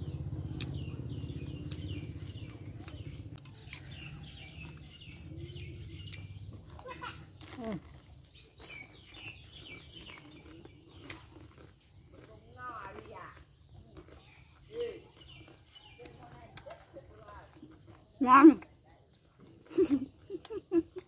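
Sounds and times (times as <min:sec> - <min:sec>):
birds chirping: 0:00.0 - 0:21.0
chewing crunchy food: 0:00.1 - 0:21.0.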